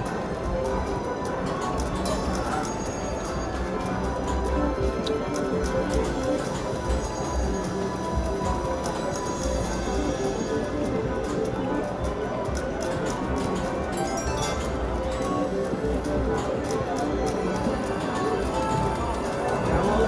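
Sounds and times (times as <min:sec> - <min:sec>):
slot machine game music: 0:00.0 - 0:20.0.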